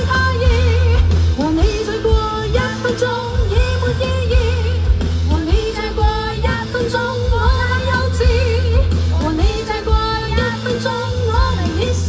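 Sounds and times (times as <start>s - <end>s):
band with heavy bass: 0.0s - 12.0s
woman singing into microphone: 0.0s - 12.0s.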